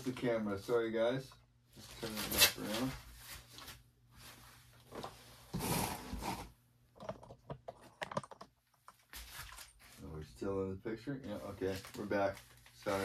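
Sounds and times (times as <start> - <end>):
small clicks and knocks: 7.0 - 9.1
plastic sleeve rustling: 11.2 - 13.0.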